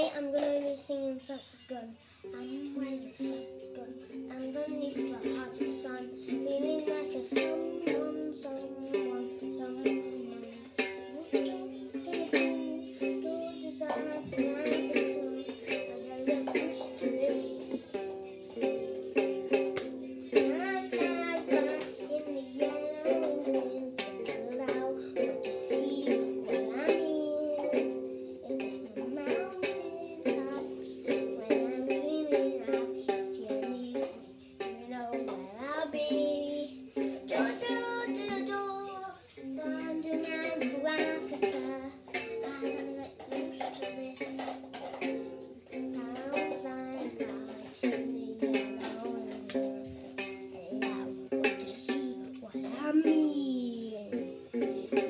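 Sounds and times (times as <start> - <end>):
child singing: 0.0 - 55.0
plucked-string music: 0.0 - 55.0.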